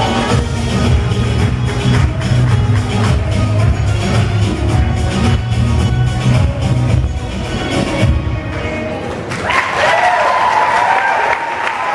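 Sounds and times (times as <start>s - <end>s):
audience applauding: 9.3s - 11.9s
long high cheer: 9.3s - 11.9s.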